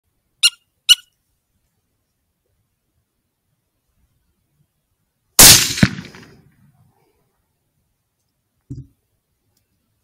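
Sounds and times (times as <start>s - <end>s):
high-pitched predator call squeaks: 0.4s - 1.2s.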